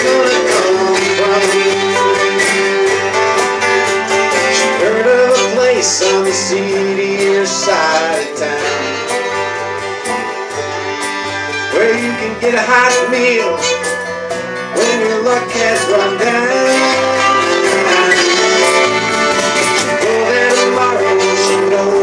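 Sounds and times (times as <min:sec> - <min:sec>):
voices singing together: 0:00.0 - 0:03.0, 0:04.4 - 0:09.4, 0:19.8 - 0:22.0
strummed acoustic guitars: 0:00.0 - 0:22.0.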